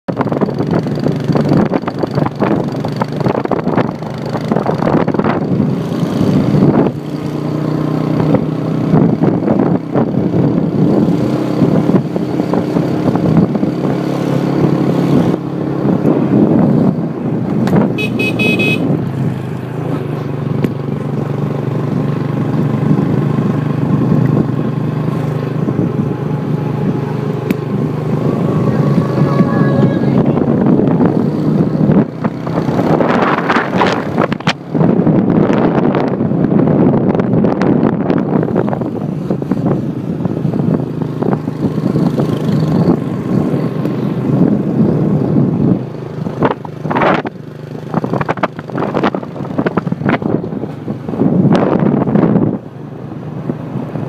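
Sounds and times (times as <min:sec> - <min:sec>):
motorcycle engine running: 0:00.1 - 0:53.9
horn beep: 0:18.0 - 0:18.9.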